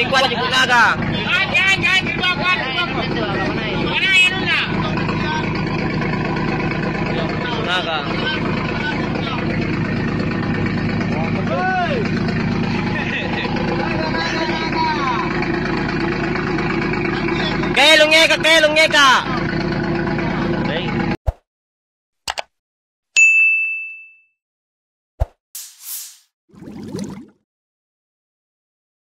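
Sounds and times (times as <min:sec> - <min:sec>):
men talking: 0:00.0 - 0:05.6, 0:07.0 - 0:09.6, 0:11.1 - 0:12.1, 0:12.8 - 0:15.3, 0:17.2 - 0:19.4, 0:20.6 - 0:21.0
boat engine running: 0:00.0 - 0:21.2.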